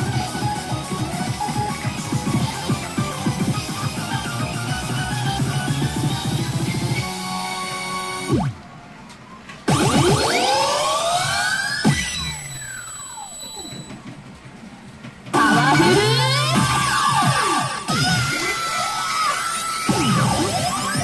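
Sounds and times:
loud electronic bursts: 0.0s - 8.6s, 9.7s - 13.9s, 15.4s - 21.0s
sweeping electronic tones: 9.7s - 14.0s.

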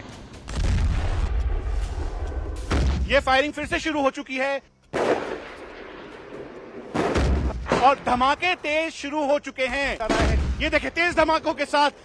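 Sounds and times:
gunshot echoing off mountains: 4.9s - 8.2s.

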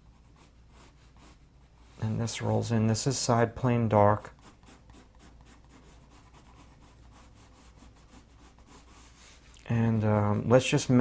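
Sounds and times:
pencil shading on paper: 0.0s - 2.2s, 3.4s - 10.8s.

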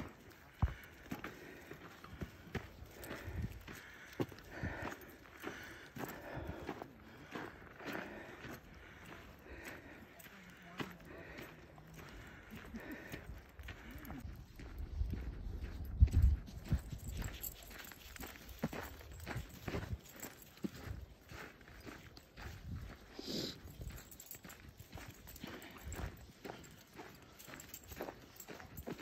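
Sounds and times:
footsteps on dirt and snow: 0.0s - 29.0s.

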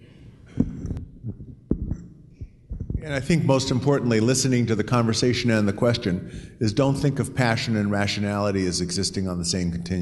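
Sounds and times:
microphone handling thumps: 0.5s - 3.1s.

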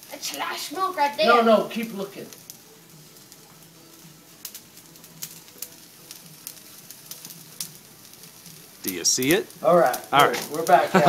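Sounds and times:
food crackling on hot grill: 0.0s - 11.0s.

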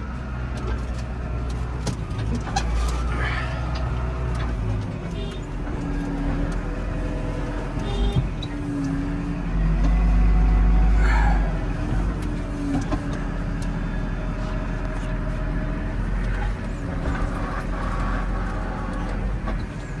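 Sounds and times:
tractor engine low rumble: 0.0s - 20.0s.

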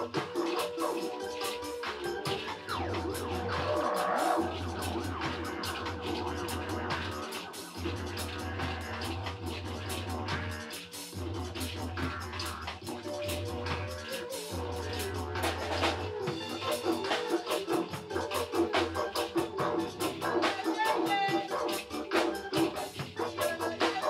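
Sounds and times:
didgeridoo drone: 0.0s - 24.0s
drum kit: 0.0s - 24.0s
hand shaker: 0.0s - 24.0s.

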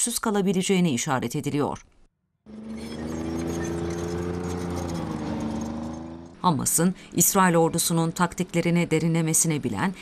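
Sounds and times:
tracked vehicle engine running: 2.2s - 10.0s.

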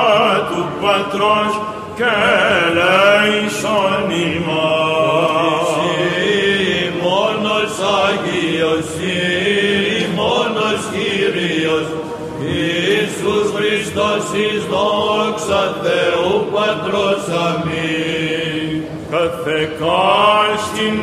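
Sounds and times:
men chanting: 0.0s - 21.0s.

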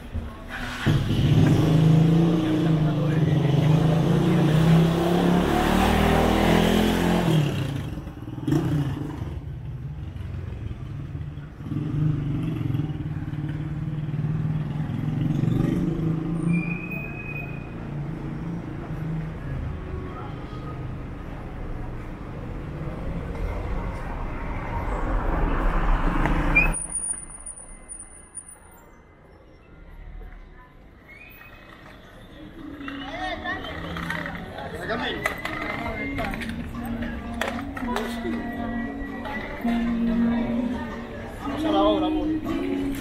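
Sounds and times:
vehicle passing on cobbles: 31.6s - 38.3s.

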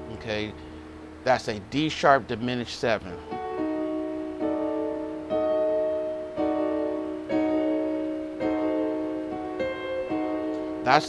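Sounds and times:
digital piano chords: 0.0s - 11.0s.

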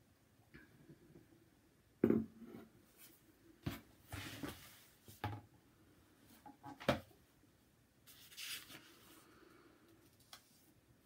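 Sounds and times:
soft rustle: 8.0s - 10.8s.

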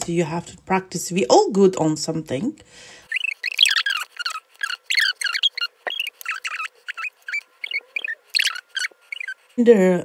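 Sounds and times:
high-pitched squeaks and chirps: 3.0s - 9.6s.

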